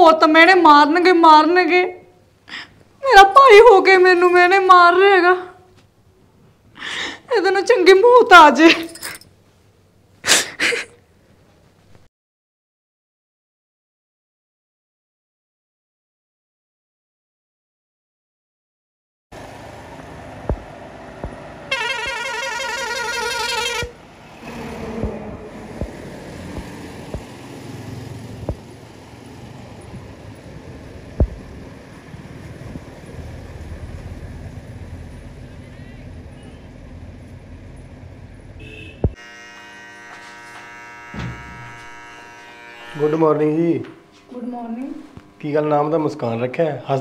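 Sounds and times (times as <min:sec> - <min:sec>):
steady buzzing hum: 0:20.3 - 0:29.2, 0:29.8 - 0:35.4, 0:38.5 - 0:47.0
vehicle horn wavering: 0:21.6 - 0:25.0, 0:38.6 - 0:43.8.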